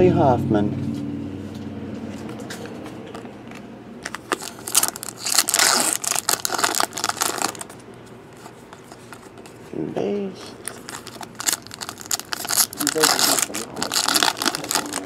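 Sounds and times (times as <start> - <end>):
foil wrapper crinkling: 4.0 - 7.8, 10.5 - 15.0.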